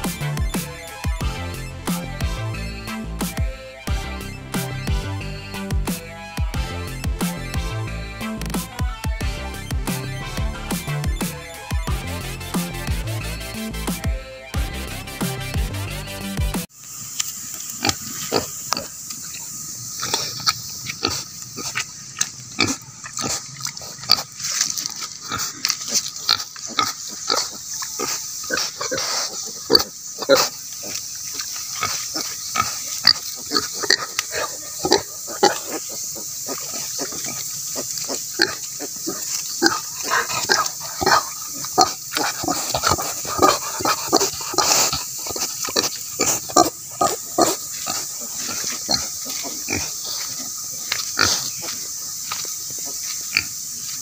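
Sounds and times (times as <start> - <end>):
steady high hiss: 0.0 - 54.0
pigs grunting: 17.7 - 53.7.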